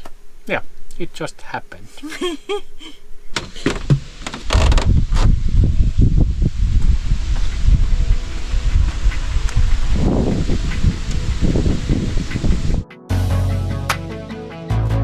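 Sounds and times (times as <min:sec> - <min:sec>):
wind buffeting microphone: 0:03.8 - 0:12.9.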